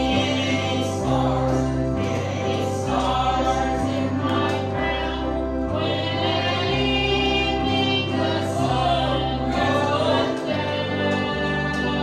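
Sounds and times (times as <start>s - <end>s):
gospel singing with accompaniment: 0.0s - 12.0s.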